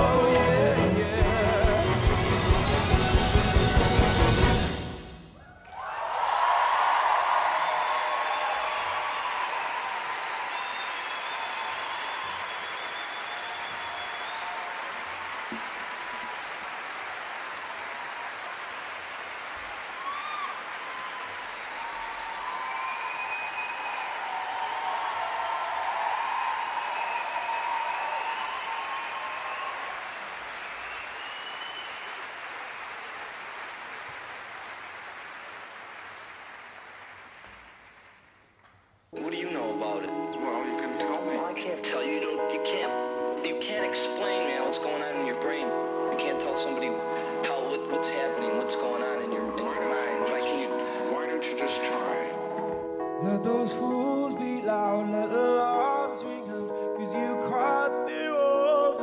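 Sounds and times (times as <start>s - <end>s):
audience applauding and cheering: 0.0s - 39.3s.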